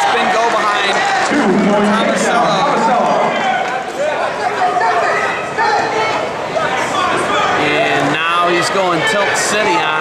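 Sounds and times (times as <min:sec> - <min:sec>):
crowd shouting: 0:01.1 - 0:05.9.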